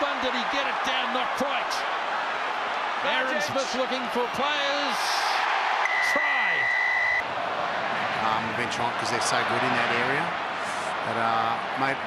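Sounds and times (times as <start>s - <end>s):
stadium crowd noise: 0.0s - 12.0s.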